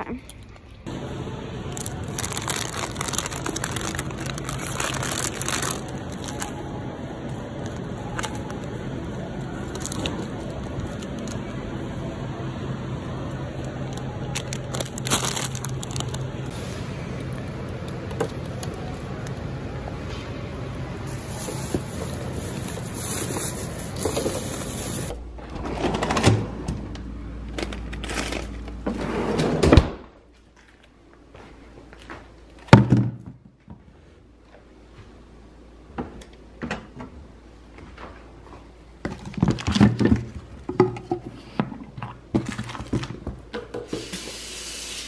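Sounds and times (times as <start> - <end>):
plastic bag rustling: 1.7 - 6.6, 9.5 - 11.5, 13.9 - 16.5, 21.1 - 25.1.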